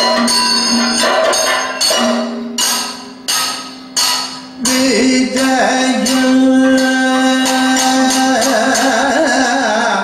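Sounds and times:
ringing bell-metal strikes: 0.0 - 9.0
person singing: 4.6 - 10.0.

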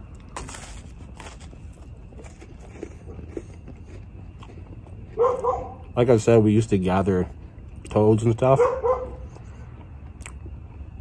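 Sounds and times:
dog whining: 5.2 - 5.9.

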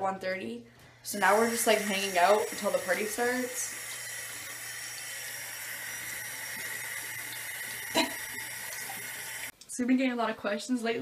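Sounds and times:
water running from a tap: 1.1 - 9.5.

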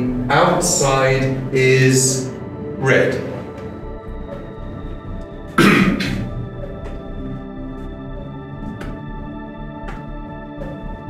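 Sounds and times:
background music: 0.0 - 11.0
man coughing: 5.6 - 6.8.

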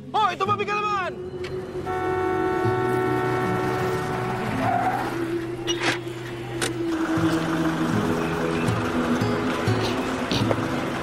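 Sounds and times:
car horn blast: 1.8 - 4.6
car engine running: 1.9 - 11.0.

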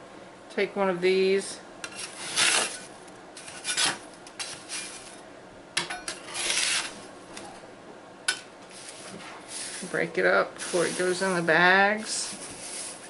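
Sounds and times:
putty knife scraping metal tray: 1.8 - 5.1, 6.1 - 7.0.

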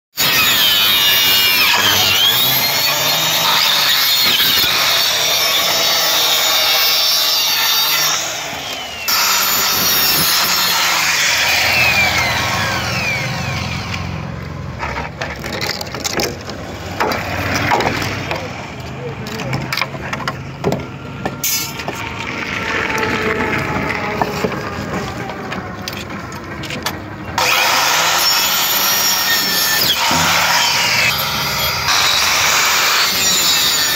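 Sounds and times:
saw motor winding down: 0.2 - 14.5, 27.4 - 33.9
circular saw cutting bamboo: 0.2 - 20.2, 27.4 - 33.9.

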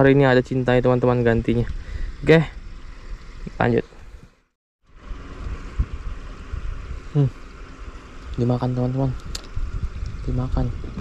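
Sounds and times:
water noise: 0.0 - 11.0
wind noise: 5.0 - 7.4, 8.2 - 11.0
low rumbling on microphone: 5.0 - 11.0.

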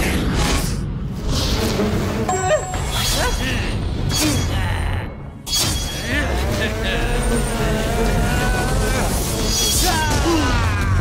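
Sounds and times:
background music: 2.3 - 11.0.

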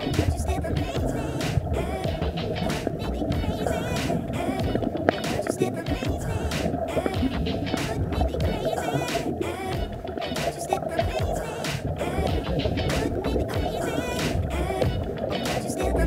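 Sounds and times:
low underwater rumble: 0.0 - 9.0, 9.7 - 10.2, 10.9 - 16.0
music playing: 0.0 - 16.0.

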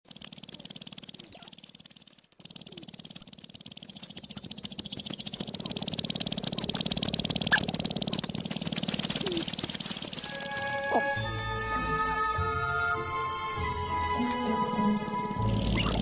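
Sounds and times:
grouse stamping feet rattle: 0.1 - 11.8.

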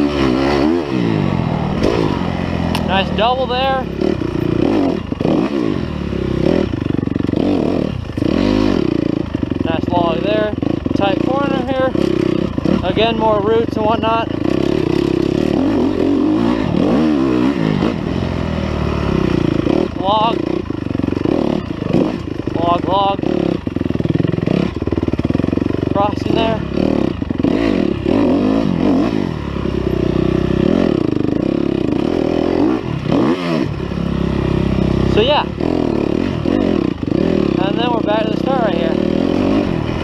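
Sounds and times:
dirt bike engine revving: 0.0 - 40.0.

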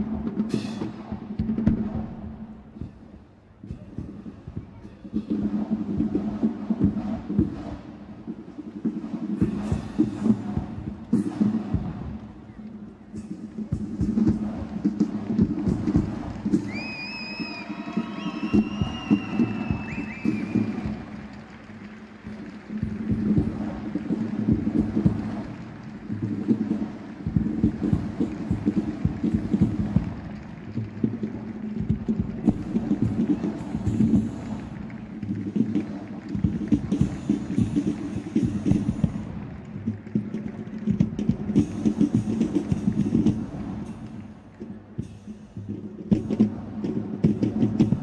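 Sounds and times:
marching drum cadence: 0.0 - 48.0
high wavering whistle tone: 16.6 - 20.9.

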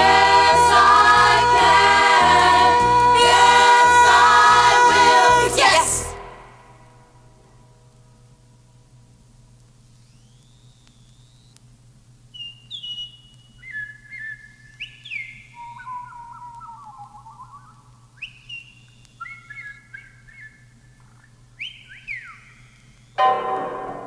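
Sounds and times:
high whistle-like notes: 0.0 - 6.9, 21.7 - 24.0.

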